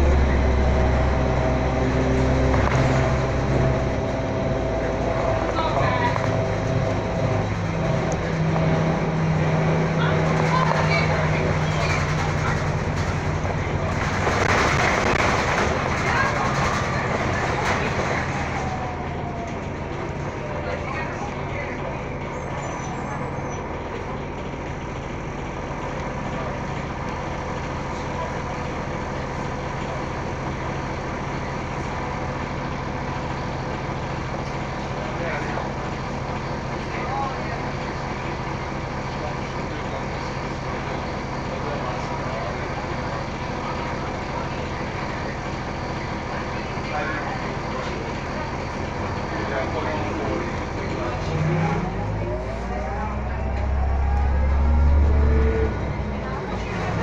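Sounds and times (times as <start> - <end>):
bus drivetrain hum: 0.0 - 57.0
bus moving off whine and rumble: 0.0 - 57.0.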